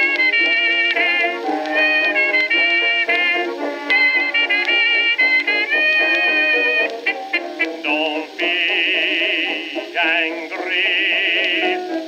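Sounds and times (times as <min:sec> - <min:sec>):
old jazz record playing: 0:00.0 - 0:12.0.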